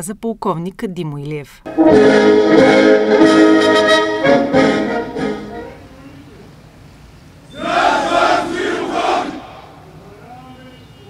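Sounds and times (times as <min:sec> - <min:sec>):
soldiers shouting in unison: 0:07.6 - 0:09.9.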